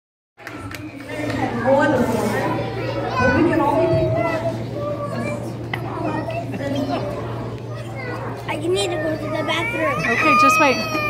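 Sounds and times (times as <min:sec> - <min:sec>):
children's voices: 0:00.4 - 0:11.0.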